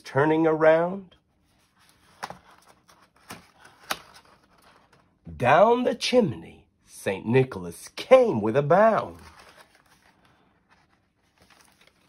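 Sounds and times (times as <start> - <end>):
paper rustling: 1.4 - 5.2, 8.8 - 12.0
sharp paper clicks: 2.2 - 4.8.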